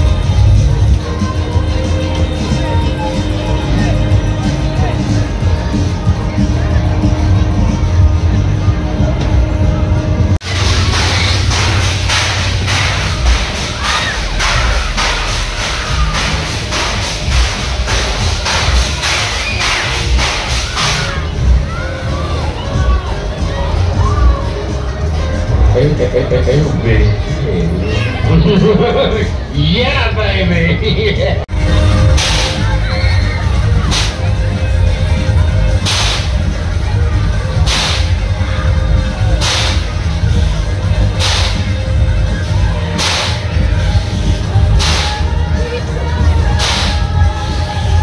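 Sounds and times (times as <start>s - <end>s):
fairground music with thumping bass: 0.0s - 48.0s.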